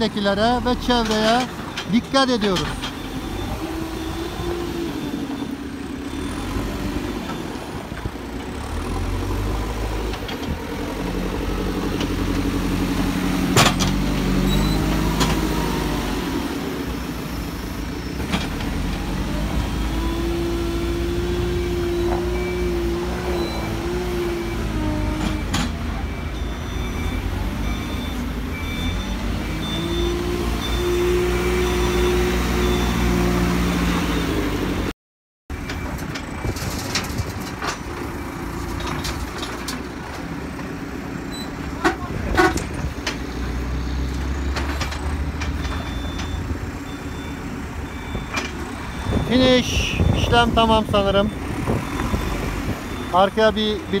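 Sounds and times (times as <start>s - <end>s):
diesel engine revving under load: 0.0s - 34.9s, 35.5s - 54.0s.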